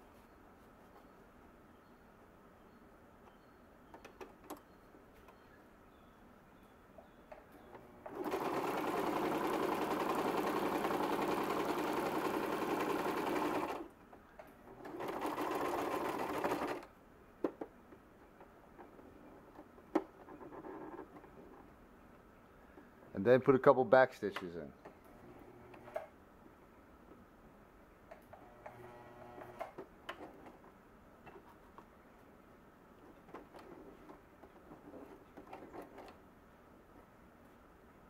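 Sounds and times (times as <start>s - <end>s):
electric sewing machine stitching: 7.8s - 13.9s, 14.6s - 16.9s, 25.1s - 26.1s, 28.4s - 29.8s.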